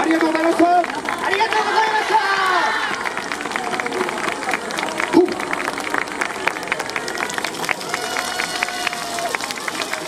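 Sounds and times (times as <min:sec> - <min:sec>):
audience clapping: 0:00.0 - 0:10.0.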